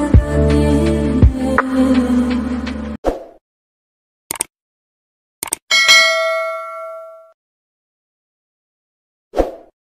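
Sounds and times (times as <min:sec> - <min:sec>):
double mouse click: 0:04.3 - 0:04.5
notification bell ding: 0:05.7 - 0:07.4.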